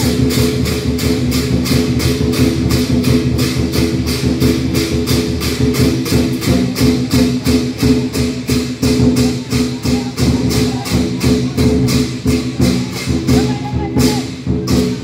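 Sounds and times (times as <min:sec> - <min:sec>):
drum and cymbal beat: 0:00.0 - 0:15.0.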